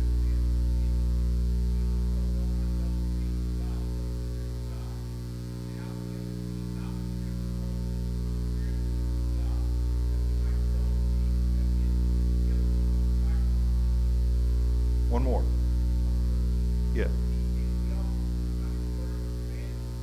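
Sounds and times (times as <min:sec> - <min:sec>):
faint distant voice: 0:00.0 - 0:15.3, 0:16.8 - 0:20.0
electrical mains hum: 0:00.0 - 0:20.0.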